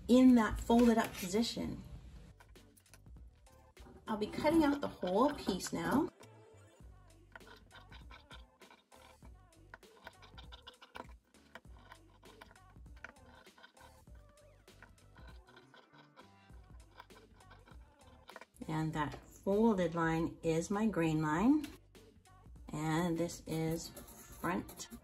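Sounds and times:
soft background music: 0:00.0 - 0:25.0.

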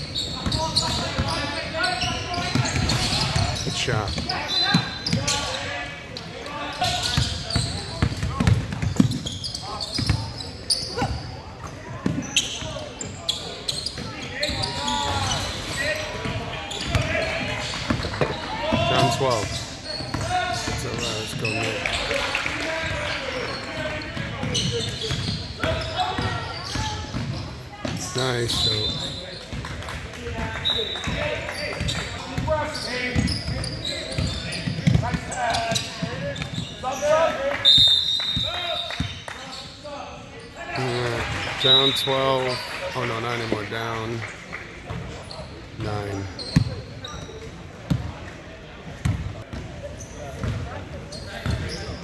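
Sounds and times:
high shoe squeaks: 0:00.0 - 0:17.4, 0:18.3 - 0:21.9, 0:23.3 - 0:29.4, 0:30.6 - 0:40.7, 0:45.2 - 0:47.5, 0:50.0 - 0:52.0
basketball bouncing: 0:07.2 - 0:09.3, 0:50.4 - 0:50.6.

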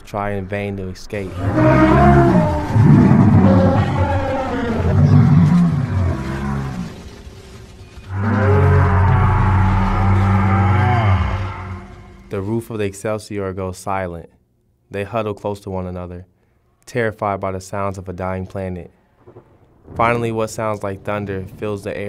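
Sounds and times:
animals roaring and bellowing: 0:01.2 - 0:12.4.

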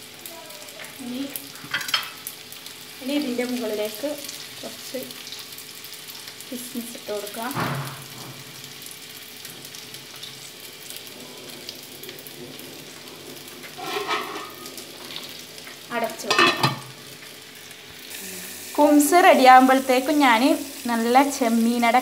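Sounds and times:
low sizzle in frying pan: 0:00.0 - 0:22.0.

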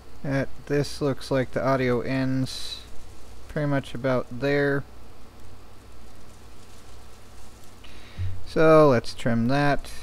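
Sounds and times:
faint hum: 0:00.0 - 0:10.0
low hiss: 0:00.0 - 0:10.0.

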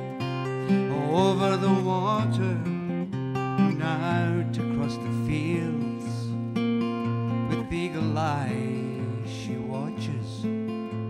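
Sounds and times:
acoustic guitar strumming: 0:00.0 - 0:11.0
man singing: 0:00.6 - 0:06.4, 0:07.4 - 0:10.5.

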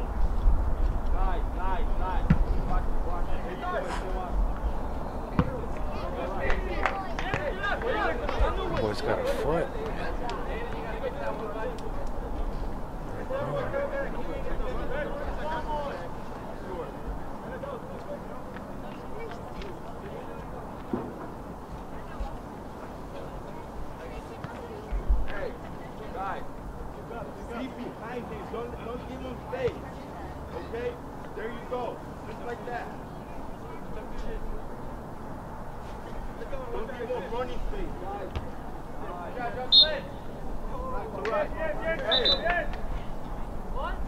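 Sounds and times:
open-air ambience: 0:00.0 - 0:44.0
distant shouting voices: 0:37.9 - 0:44.0.

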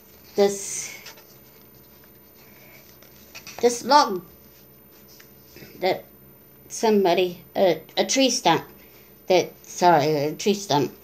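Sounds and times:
paper pages rustling: 0:00.1 - 0:03.7, 0:04.3 - 0:05.7.

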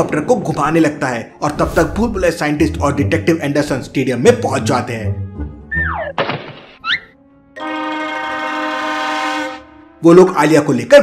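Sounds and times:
short whoosh: 0:01.5 - 0:02.6
long steady horn-like tone: 0:07.6 - 0:09.9.

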